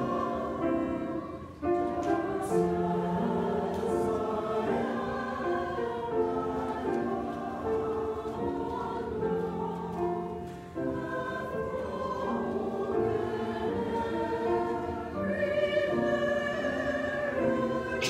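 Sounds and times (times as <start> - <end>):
choir singing in harmony: 0.0 - 18.0.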